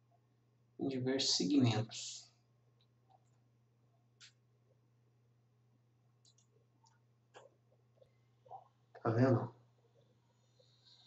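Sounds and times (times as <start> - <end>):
faint computer mouse clicks: 4.2 - 4.4, 6.2 - 8.1.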